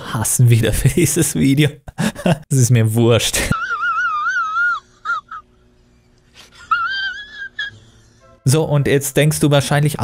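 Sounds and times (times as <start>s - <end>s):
man crying in falsetto wail: 3.5s - 5.5s, 6.5s - 8.0s.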